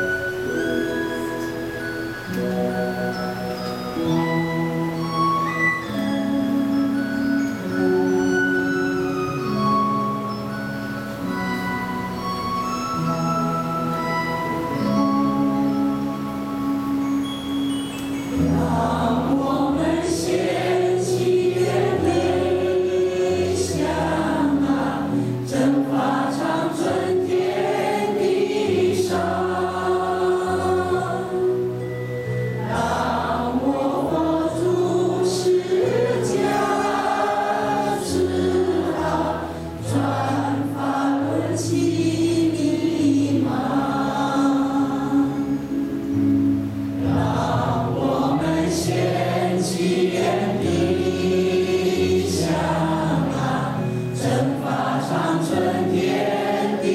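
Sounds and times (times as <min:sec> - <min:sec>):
held accompaniment chords: 0:00.0 - 0:56.9
choir singing slow song: 0:18.3 - 0:56.9
choir breaths: 0:18.6 - 0:31.2.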